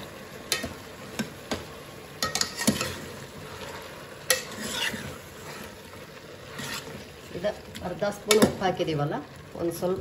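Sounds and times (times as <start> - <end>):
vegetables sizzling in a pot: 0.0 - 10.0
spoon scraping and clinking pot: 2.2 - 5.7, 6.5 - 7.0.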